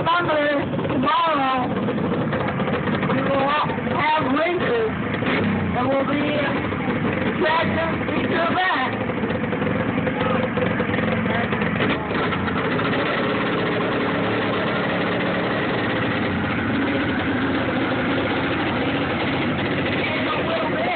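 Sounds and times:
tractor engine running: 0.0s - 20.9s.

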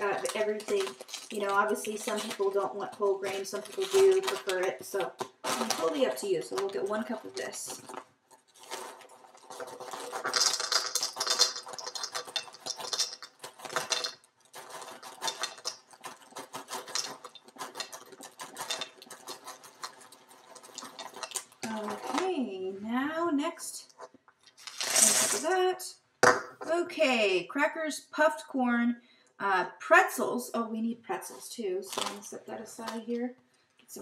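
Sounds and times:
crackers tipped into metal bowl: 0.0s - 2.6s, 3.3s - 22.2s, 24.5s - 25.5s
crackers pouring into a cup: 0.0s - 22.2s, 24.5s - 25.5s
bag rustling: 0.0s - 22.4s, 24.0s - 25.4s.

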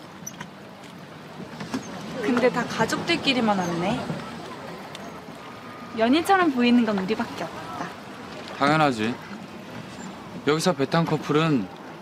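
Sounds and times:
water splashing and lapping: 0.0s - 12.0s.

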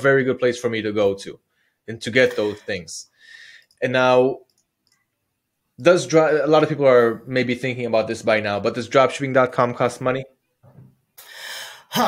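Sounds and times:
man speaking: 0.0s - 4.5s, 5.8s - 10.3s
man breathing in: 2.4s - 3.8s, 11.2s - 11.9s.

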